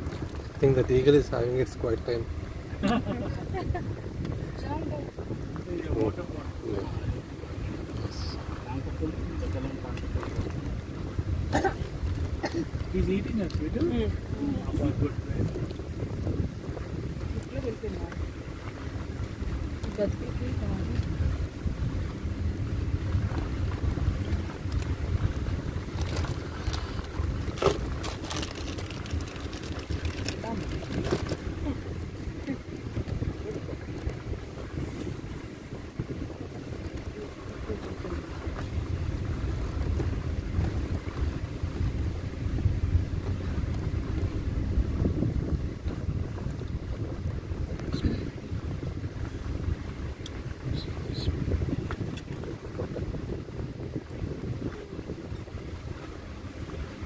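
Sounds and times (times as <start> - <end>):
vehicle driving on dirt track: 0.0 - 57.0
wind buffeting microphone: 0.0 - 57.0.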